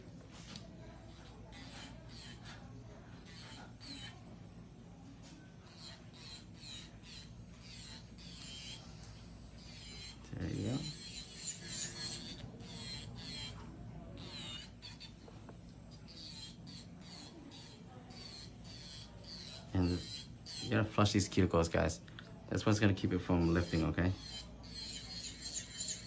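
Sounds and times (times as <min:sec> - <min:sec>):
electric nail drill sanding: 0:00.5 - 0:04.4, 0:05.0 - 0:21.7, 0:22.6 - 0:26.0.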